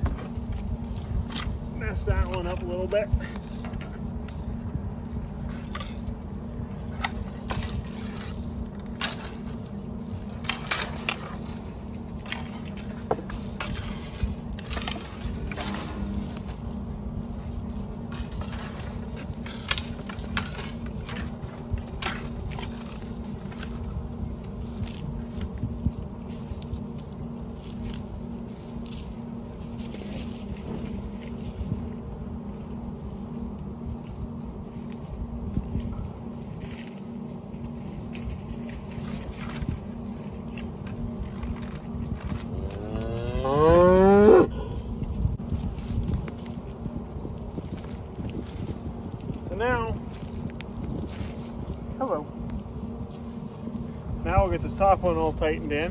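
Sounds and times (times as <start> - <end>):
crackles and scrapes of wire: 0.0 - 55.9
steady low rumble: 0.0 - 55.9.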